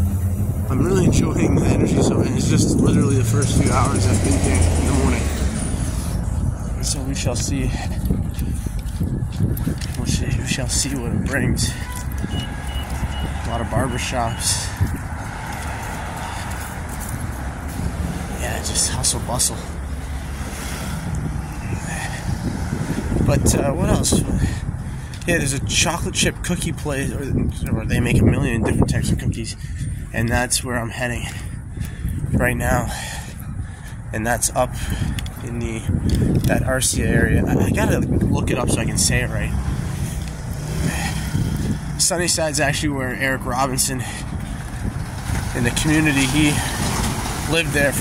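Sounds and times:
city street traffic rumble: 0.0 - 48.0
wind buffeting microphone: 0.0 - 48.0.

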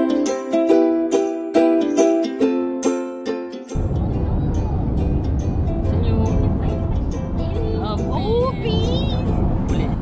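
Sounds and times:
music: 0.0 - 10.0
car road and engine rumble: 3.7 - 10.0.

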